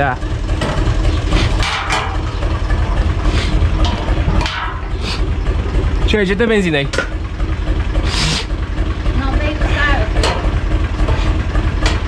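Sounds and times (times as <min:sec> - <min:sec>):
engine idling rumble: 0:00.0 - 0:12.0.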